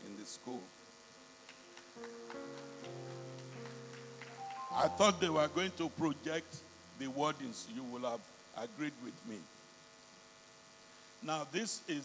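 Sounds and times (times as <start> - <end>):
keyboard chords: 0.8 - 8.0.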